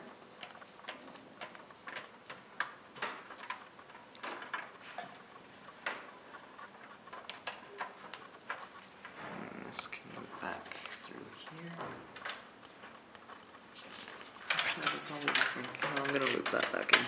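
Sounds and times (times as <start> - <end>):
cable clicks and rustles: 0.0 - 17.0.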